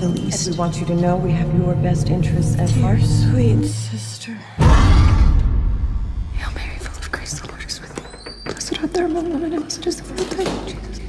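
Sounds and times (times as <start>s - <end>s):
deep booming hit: 4.6s - 7.1s
hushed whispering: 6.3s - 8.0s.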